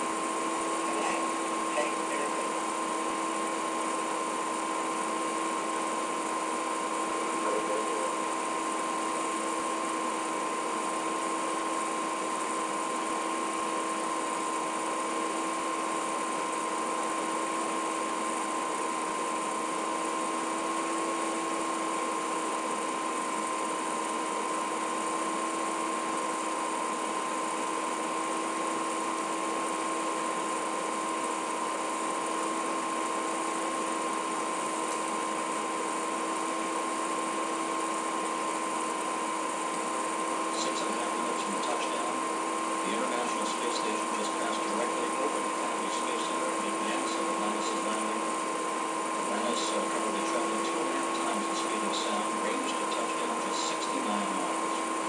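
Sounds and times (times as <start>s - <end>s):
steady multi-tone hum: 0.0s - 55.0s.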